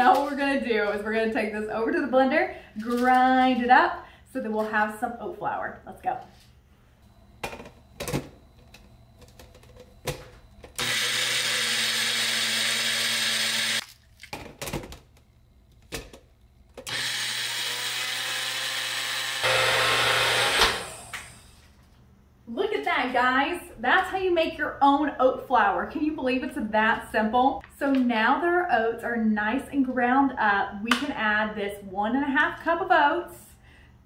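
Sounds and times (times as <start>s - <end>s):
blender grinding oats: 10.8s - 13.8s, 16.9s - 21.5s.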